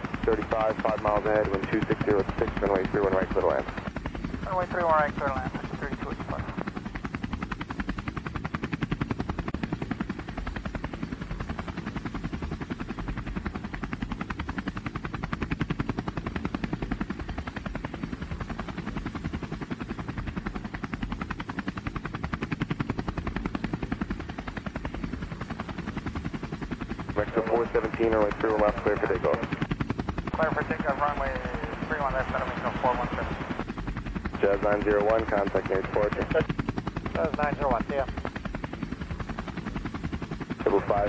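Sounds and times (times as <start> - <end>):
drone propellers whirring: 0.0 - 41.0.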